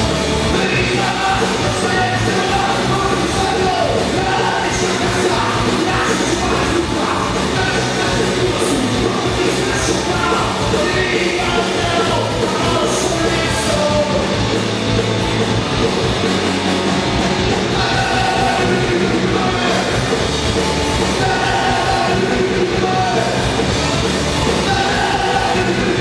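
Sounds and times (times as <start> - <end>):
distorted electric guitar: 0.0 - 26.0
drum kit: 0.0 - 26.0
electric bass: 0.0 - 26.0.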